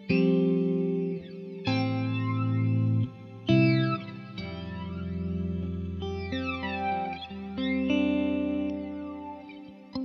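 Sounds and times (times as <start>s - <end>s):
flanged electric guitar chords: 0.0s - 10.0s.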